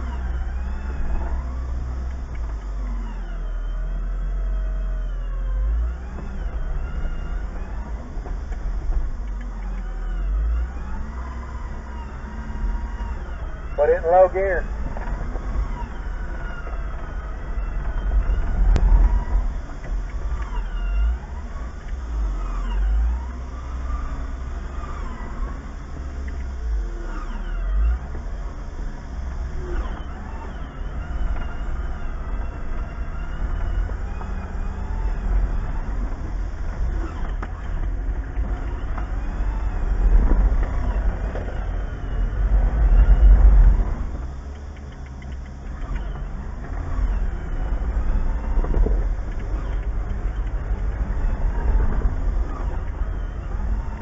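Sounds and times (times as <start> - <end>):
engine rumbling at low revs: 0.0 - 54.0.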